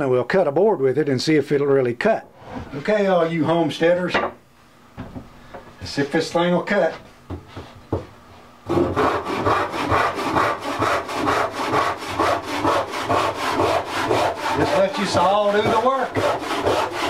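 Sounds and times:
hand saw cutting wood: 8.7 - 17.0.

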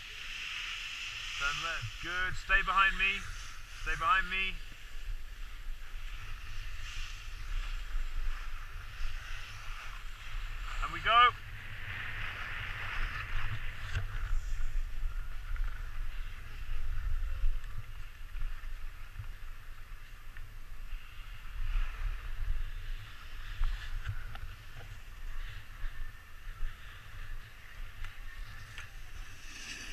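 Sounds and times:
skis scraping over snow: 0.0 - 29.9
wind rumble on microphone: 0.9 - 29.9.

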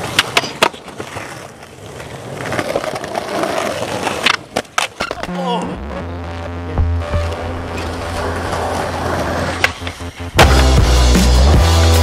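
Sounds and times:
skateboard clacking on ground: 0.0 - 5.4
skateboard wheels rolling on concrete: 0.0 - 12.0.

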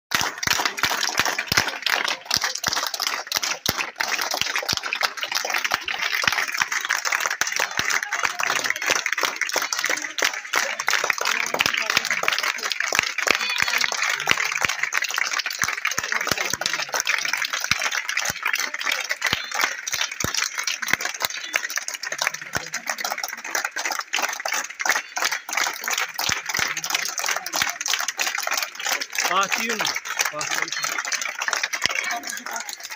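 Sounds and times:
crowd clapping: 0.1 - 32.9
voices: 5.0 - 23.7, 24.6 - 32.9.

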